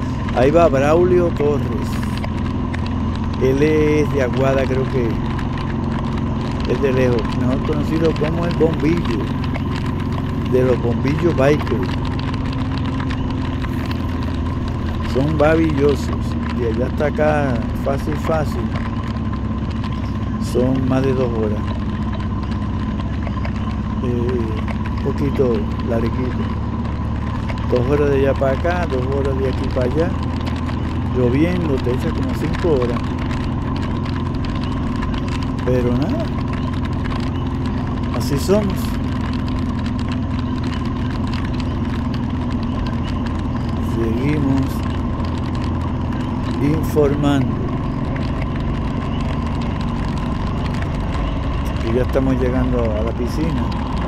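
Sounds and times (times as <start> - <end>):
motorcycle engine running: 0.0 - 54.0
wind and tyre noise on wet road: 0.0 - 54.0.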